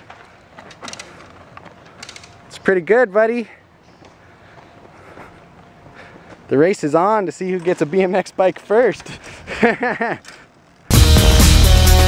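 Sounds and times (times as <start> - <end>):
bike tyres on dirt: 0.0 - 11.0.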